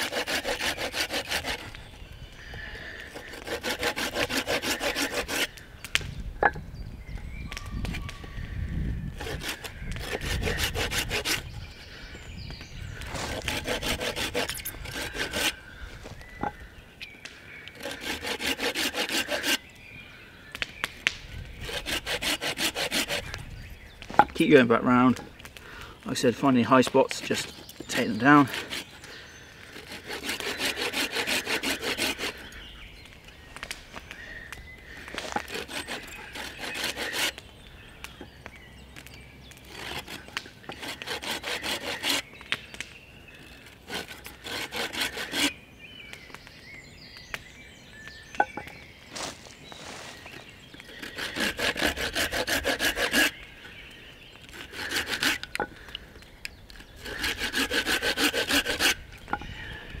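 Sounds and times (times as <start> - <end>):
hand saw cutting log: 0.0 - 1.8, 3.1 - 5.6, 9.2 - 11.6, 13.0 - 15.6, 17.8 - 19.6, 21.6 - 23.4, 26.7 - 29.1, 29.7 - 32.6, 35.2 - 37.4, 39.6 - 42.5, 43.6 - 45.6, 50.9 - 53.4, 54.4 - 55.9, 56.7 - 59.4.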